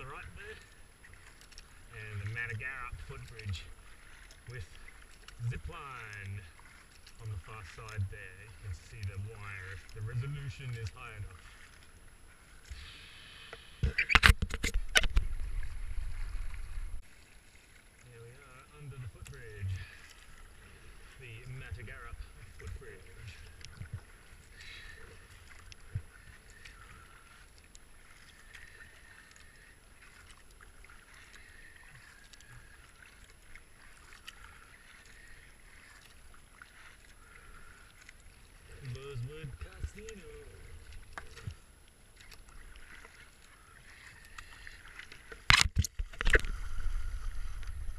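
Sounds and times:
water sloshing at kayak hull: 0:00.0 - 0:47.9.

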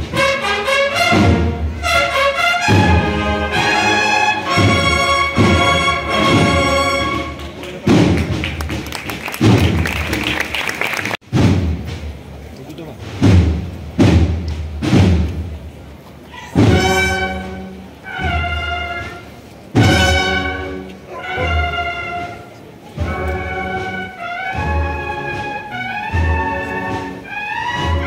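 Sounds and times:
brass chords: 0:00.0 - 0:08.4, 0:16.6 - 0:28.0
heavy drum strokes: 0:00.0 - 0:10.0, 0:11.2 - 0:28.0.

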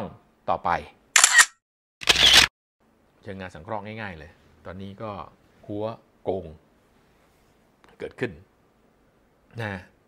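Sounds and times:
camera shutter sound effect: 0:01.2 - 0:02.5.

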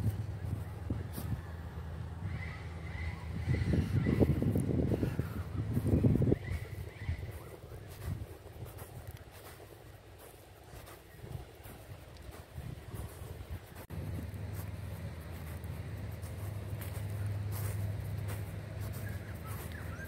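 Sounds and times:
steady low hum: 0:00.0 - 0:20.0
wind rumbling on microphone: 0:00.0 - 0:20.0.

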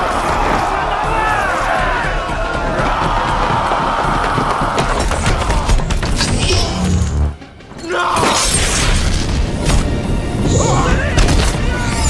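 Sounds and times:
men yelling together: 0:00.0 - 0:05.8
film score music: 0:00.0 - 0:12.0.

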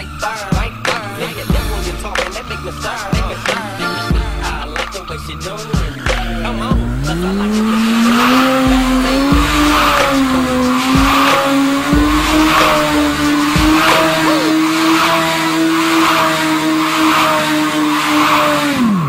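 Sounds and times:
motorcycle engine revving high: 0:00.0 - 0:19.0
tyre squealing: 0:00.0 - 0:19.0.

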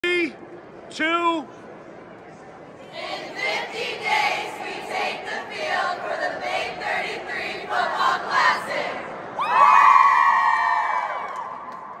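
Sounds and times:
group chanting in unison: 0:02.9 - 0:09.1.

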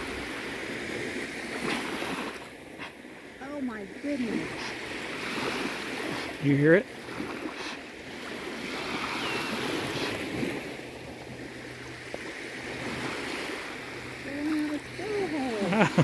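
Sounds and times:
small waves washing on shore: 0:00.0 - 0:16.0
person speaking: 0:14.2 - 0:16.0.

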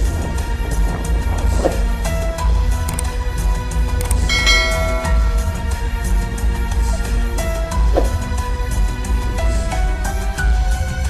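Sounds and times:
music with heavy bass beat: 0:00.0 - 0:11.0
bright bell-like chime: 0:04.3 - 0:06.1.

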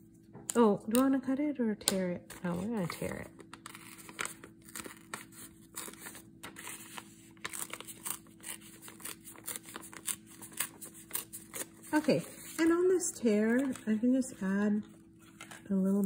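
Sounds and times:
paper being torn by hand: 0:02.4 - 0:12.7.

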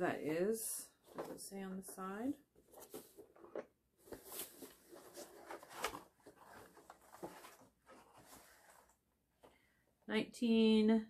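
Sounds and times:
cardboard box rustling and scraping: 0:02.7 - 0:09.0.

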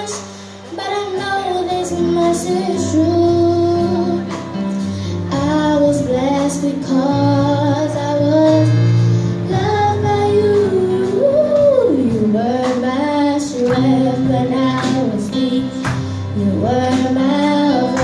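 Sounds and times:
girl singing a slow ballad: 0:00.0 - 0:18.0
instrumental accompaniment with bass notes: 0:00.0 - 0:18.0.

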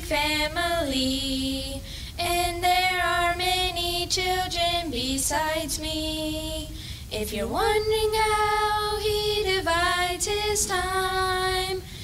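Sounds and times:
children and women singing: 0:00.0 - 0:12.0.

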